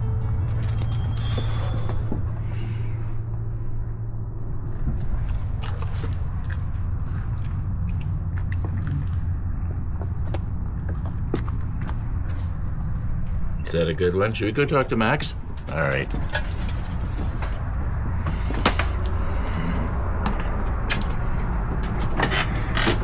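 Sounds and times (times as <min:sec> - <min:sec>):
light clinks and clicks: 0:00.0 - 0:02.7, 0:04.5 - 0:23.0
steady low rumble: 0:00.0 - 0:23.0.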